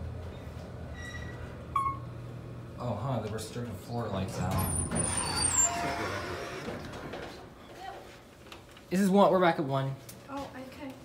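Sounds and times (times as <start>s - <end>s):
high squeal: 4.2s - 6.7s
elevator doors sliding open: 4.2s - 7.5s.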